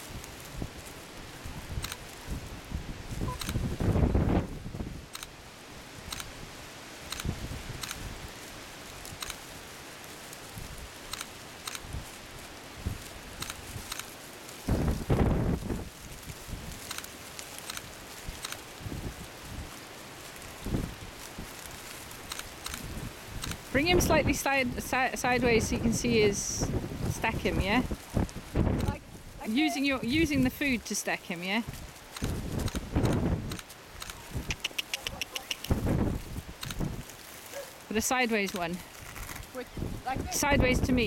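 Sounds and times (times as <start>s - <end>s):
wind buffeting microphone: 0.0s - 5.3s, 6.0s - 8.4s, 14.6s - 17.0s, 18.2s - 19.8s, 20.4s - 30.9s, 31.6s - 38.0s, 38.6s - 41.0s.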